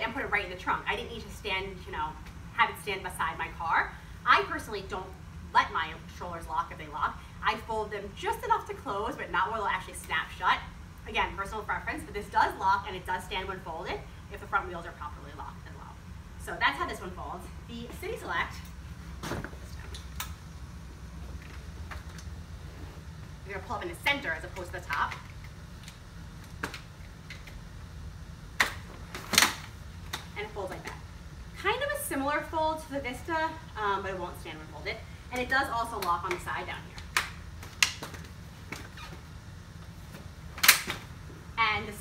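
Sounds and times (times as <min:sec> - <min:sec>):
low steady hum: 0:00.0 - 0:42.0
stroller frame loud snap: 0:40.6 - 0:41.0.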